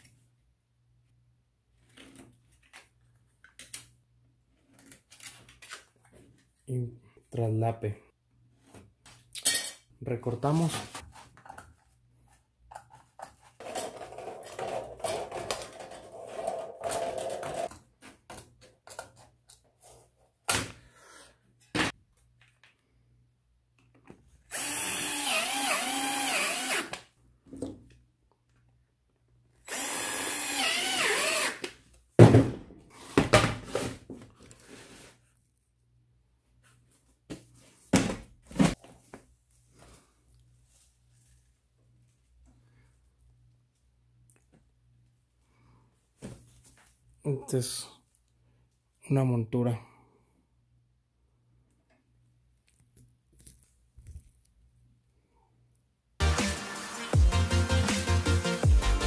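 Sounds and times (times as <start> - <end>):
cordless drill drilling into metal: 24.5 - 27.0, 29.7 - 31.7.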